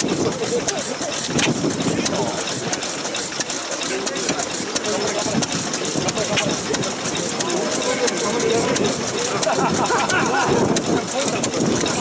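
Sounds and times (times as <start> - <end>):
crowd chatter: 0.0 - 12.0
sharp ticks: 0.0 - 12.0
stationary engine idling: 0.0 - 12.0.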